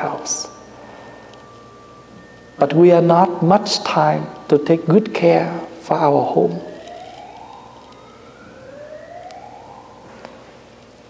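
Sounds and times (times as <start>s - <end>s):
faint emergency siren wailing: 0.0s - 11.0s.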